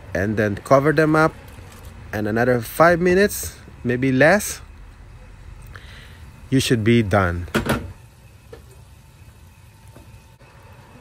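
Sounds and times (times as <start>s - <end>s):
pot simmering: 7.9s - 11.0s.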